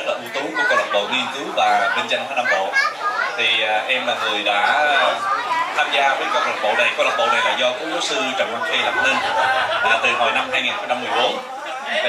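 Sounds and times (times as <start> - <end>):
man speaking into a microphone: 0.0 - 2.8, 3.4 - 12.0.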